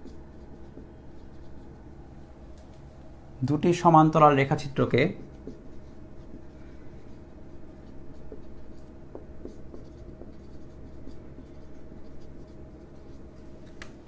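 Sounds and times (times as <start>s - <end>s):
marker scratching on whiteboard: 0.0s - 2.0s, 4.8s - 13.5s
steady low hum: 0.0s - 14.0s.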